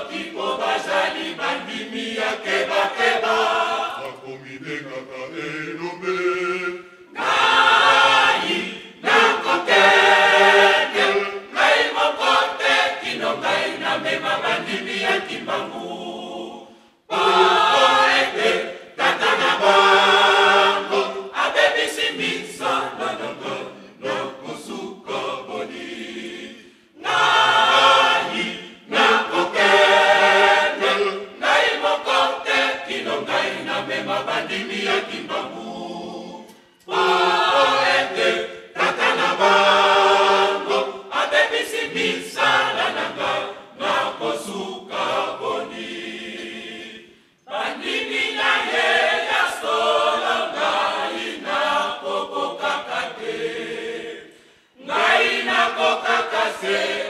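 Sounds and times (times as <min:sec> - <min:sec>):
church choir singing a cappella: 0:00.0 - 0:57.0.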